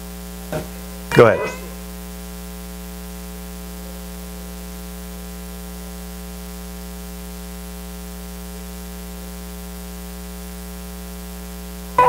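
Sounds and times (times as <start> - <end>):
electrical mains hum: 0.0 - 12.0
static hiss: 0.0 - 12.0.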